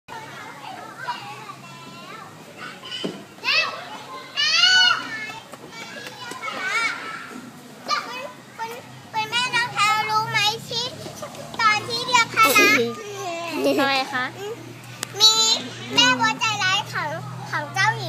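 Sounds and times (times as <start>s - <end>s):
children calling and squealing: 0.1s - 18.0s
children chattering: 0.1s - 18.0s.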